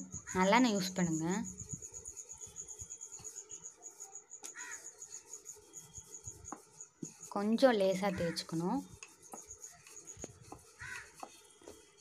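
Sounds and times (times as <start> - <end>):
cricket chirping: 0.0 - 6.9.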